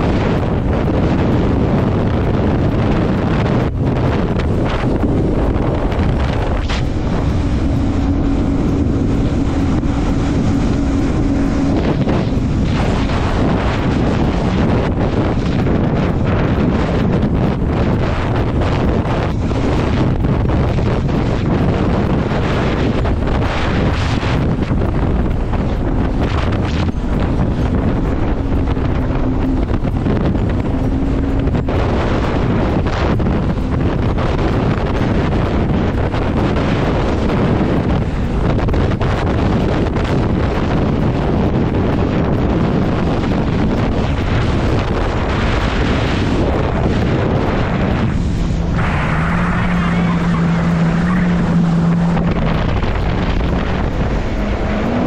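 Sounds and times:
jet ski engine hum: 0:00.0 - 0:55.0
wind buffeting microphone: 0:00.0 - 0:55.0.

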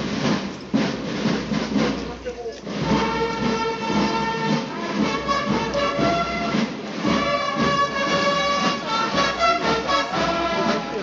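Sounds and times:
wind band sustained chords: 0:00.0 - 0:11.0.

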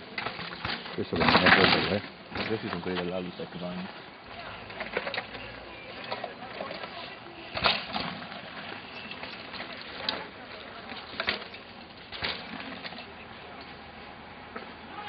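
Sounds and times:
bike rattling over stones: 0:00.0 - 0:13.8.

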